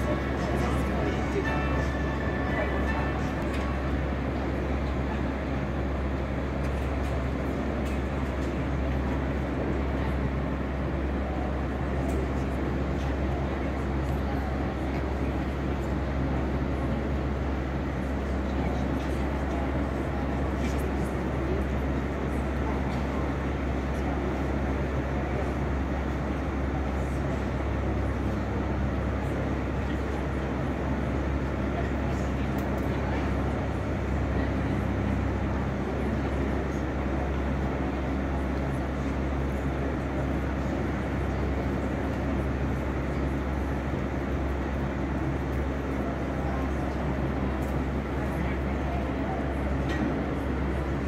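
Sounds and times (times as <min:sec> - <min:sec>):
indistinct voices: 0:00.0 - 0:05.9
steady low rumble: 0:00.0 - 0:20.6
arena background rumble: 0:00.0 - 0:51.0
even background noise: 0:00.0 - 0:51.0.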